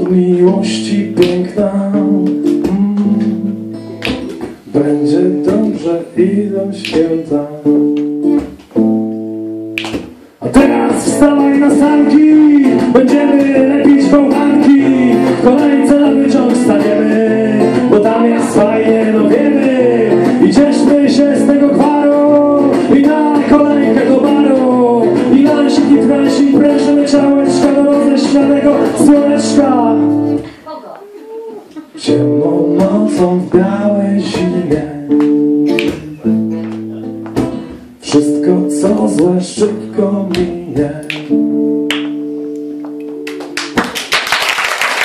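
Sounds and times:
man singing: 0.0 - 3.8, 4.6 - 8.3, 10.4 - 30.5, 31.9 - 41.8
acoustic guitar: 0.0 - 44.2
acoustic guitar chords ringing: 10.4 - 30.5.

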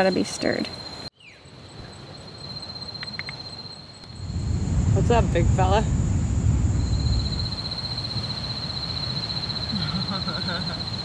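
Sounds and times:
high-pitched insect call: 0.0 - 11.0
low rumble of surf: 4.1 - 11.0.

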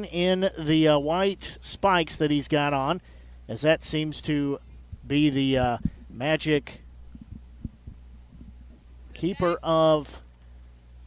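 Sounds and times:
steady low hum: 0.0 - 11.0
faint low knocks: 7.0 - 8.9.

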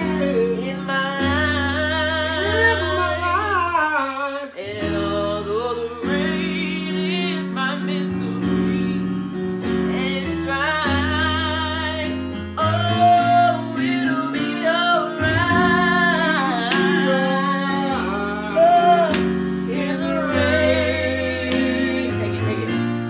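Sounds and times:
woman singing with vibrato: 0.0 - 8.9, 9.9 - 20.5
man singing: 0.0 - 9.2, 9.9 - 23.0
sustained keyboard chords: 8.2 - 23.0.

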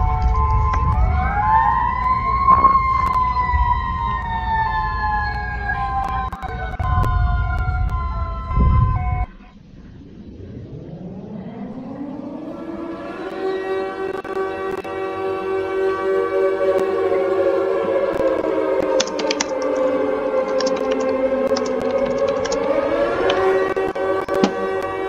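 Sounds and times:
alarm siren winding up: 0.0 - 9.4, 11.6 - 25.0
low rumble: 0.0 - 14.9
steady tones: 0.0 - 25.0
wailing emergency siren: 0.0 - 25.0.

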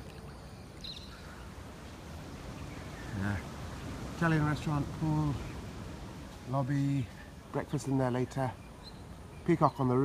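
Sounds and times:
faint high chirp: 0.0 - 1.5.

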